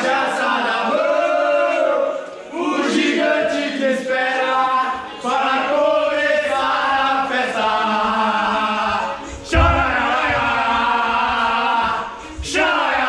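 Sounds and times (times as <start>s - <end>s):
men chanting together: 0.0s - 13.0s.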